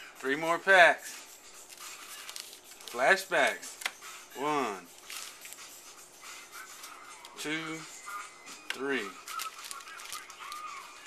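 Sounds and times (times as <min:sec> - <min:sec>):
sticker packs rustling and crinkling: 0:01.7 - 0:03.9, 0:04.9 - 0:05.6, 0:08.7 - 0:11.0.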